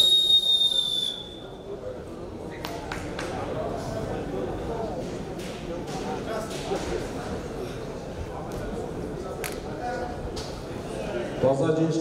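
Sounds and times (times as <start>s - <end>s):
referee's whistle blast: 0.0s - 1.6s.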